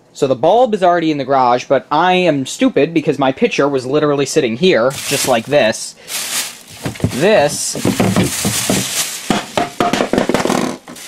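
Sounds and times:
plastic bag rustling: 4.9 - 11.0
hard plastic knocks: 6.7 - 11.0.

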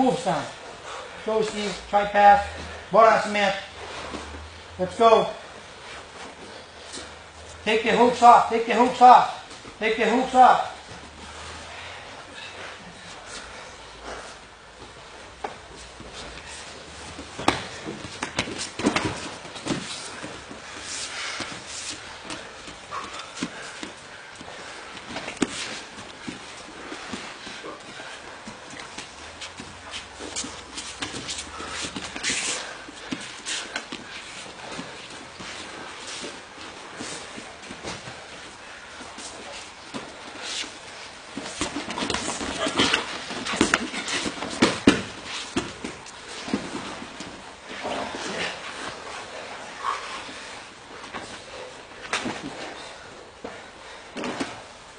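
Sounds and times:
bodies thumping on mats: 14.1 - 38.4, 39.0 - 49.6.

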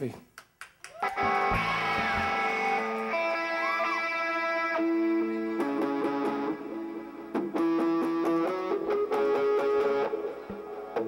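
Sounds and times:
strummed electric guitar chord: 1.2 - 11.0.

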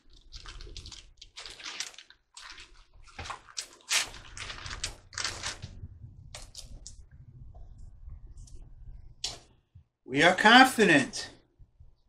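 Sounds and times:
thin pages rustling: 0.0 - 7.0.

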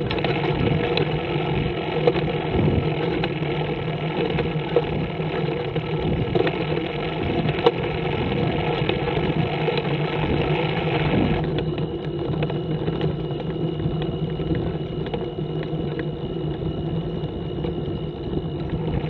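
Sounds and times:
trike engine running: 0.0 - 19.0.

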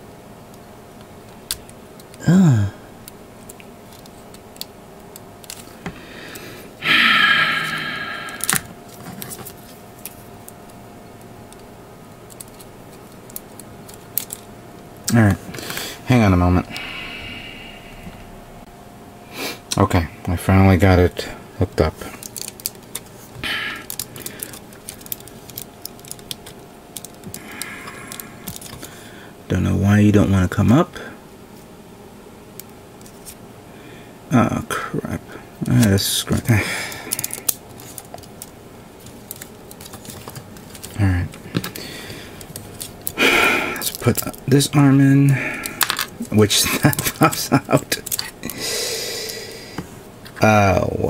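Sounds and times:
plastic parts clicking together: 12.3 - 14.5, 22.2 - 23.1, 23.8 - 28.9, 37.0 - 41.8, 45.6 - 48.6.

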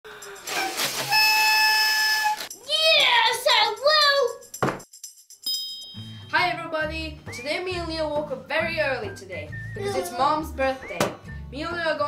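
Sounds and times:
party blower buzzing: 0.4 - 2.5.

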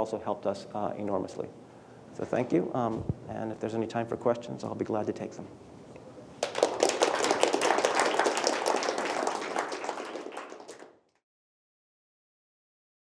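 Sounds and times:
audience applauding: 6.4 - 11.1.

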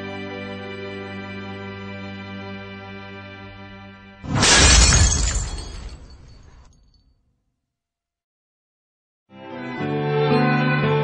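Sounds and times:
glass shattering: 4.2 - 7.0.

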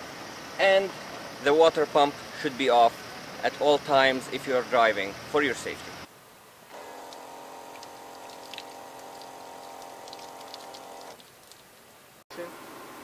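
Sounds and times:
electric water pump humming: 6.7 - 11.7
water spattering from outlet: 6.7 - 11.8.

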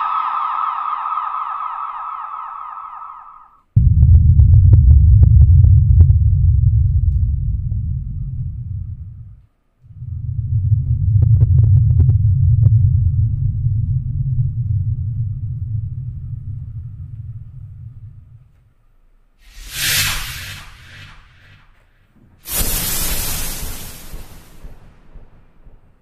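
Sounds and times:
deep low rumble: 0.0 - 21.9.

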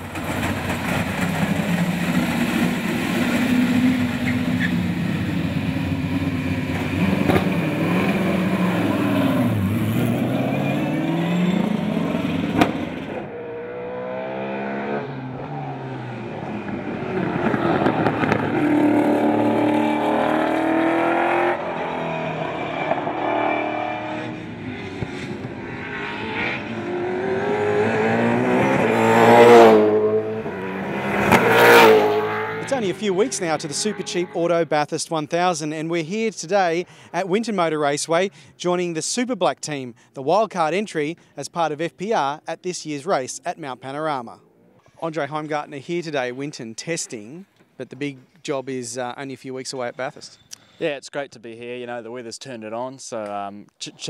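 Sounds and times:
race car engine revving: 0.0 - 34.7.

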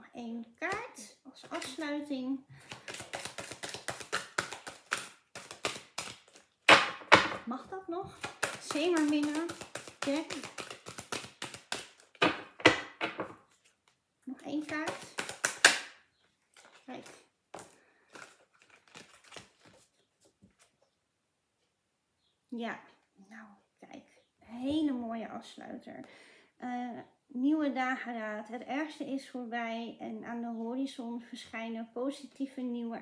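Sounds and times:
cards being shuffled: 0.7 - 2.0, 2.6 - 7.4, 8.1 - 15.9, 16.5 - 20.8.

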